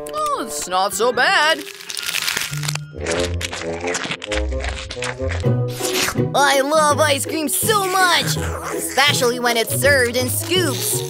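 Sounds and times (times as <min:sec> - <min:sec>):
crunchy bite into waffle cone: 0:01.6 - 0:06.2.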